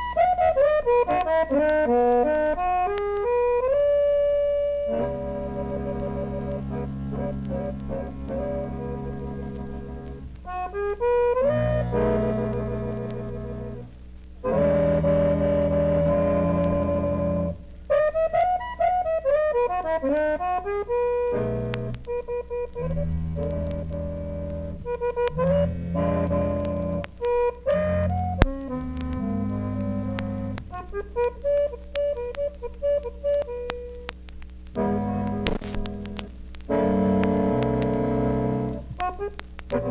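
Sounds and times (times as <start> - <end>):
accordion chords: 0.0 - 39.9
jazz quartet playing: 0.0 - 39.9.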